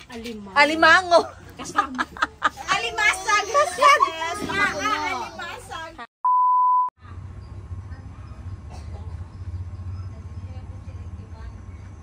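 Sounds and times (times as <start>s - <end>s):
steady electronic beep: 6.3s - 6.9s.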